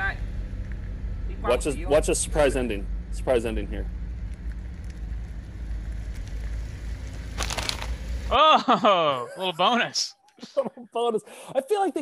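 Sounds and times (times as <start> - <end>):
car rolling on asphalt: 0.1 - 8.4.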